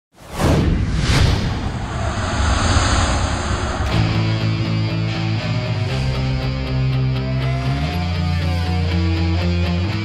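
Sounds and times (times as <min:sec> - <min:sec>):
steady rushing noise: 0:00.9 - 0:05.9
high steady whine: 0:01.4 - 0:05.9.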